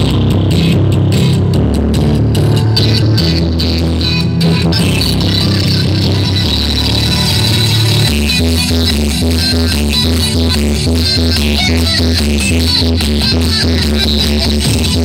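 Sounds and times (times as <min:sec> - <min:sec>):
electronic dance music heavy bass: 0:00.0 - 0:15.0.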